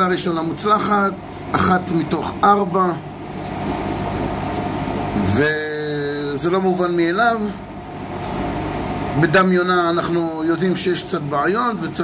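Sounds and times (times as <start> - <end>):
aquarium filter water rush: 0.0 - 12.0.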